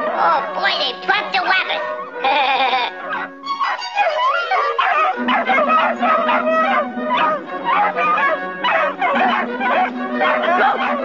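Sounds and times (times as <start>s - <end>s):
orchestral cartoon music: 0.0s - 11.0s
cartoon hounds baying and yelping: 1.5s - 11.0s.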